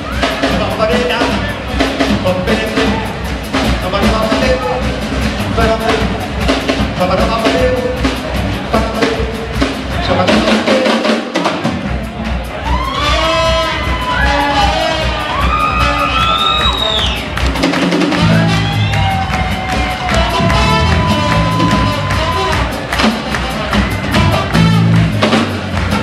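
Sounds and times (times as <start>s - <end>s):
audience cheering: 0.0s - 1.8s, 11.9s - 26.0s
live band playing soul groove: 0.0s - 26.0s
trombone: 13.0s - 16.3s, 20.0s - 26.0s.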